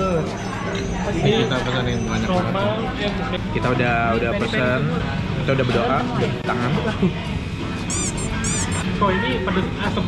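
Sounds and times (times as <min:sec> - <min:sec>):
restaurant background din: 0:00.0 - 0:10.0
high-pitched chirping squeaks: 0:07.9 - 0:08.8.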